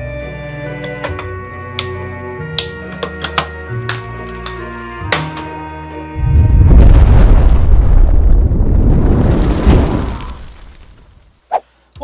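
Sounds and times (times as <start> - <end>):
explosion-like boom: 6.2 - 11.0.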